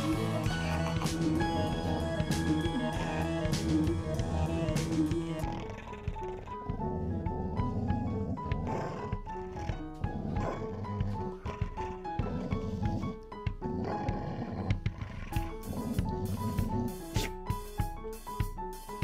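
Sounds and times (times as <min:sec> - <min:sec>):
dog growling low: 0:00.0 - 0:17.0
upbeat music with plucked melody: 0:00.0 - 0:19.0.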